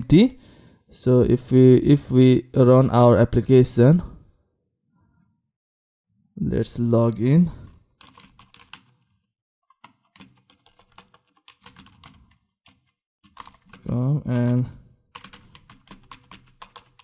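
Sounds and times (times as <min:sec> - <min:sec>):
typing on computer keyboard: 0:08.0 - 0:17.0.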